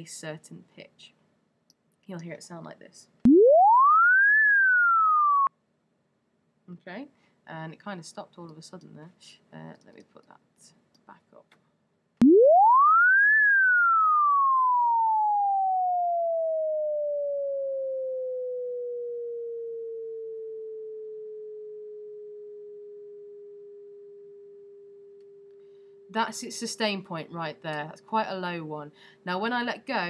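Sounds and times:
synth tone gliding in pitch: 3.3s - 5.5s, 12.2s - 26.3s.

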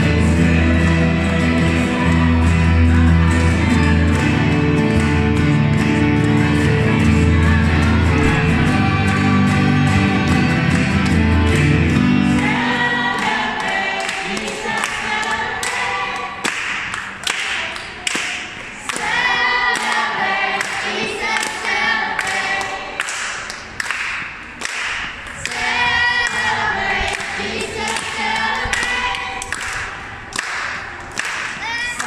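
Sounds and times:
choir singing unaccompanied: 0.0s - 16.7s, 18.7s - 23.3s, 25.4s - 30.2s
hand clapping on the beat: 0.0s - 32.0s.

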